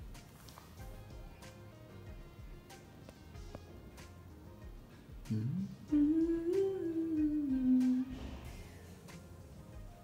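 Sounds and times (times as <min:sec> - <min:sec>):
person humming: 0:05.2 - 0:08.7.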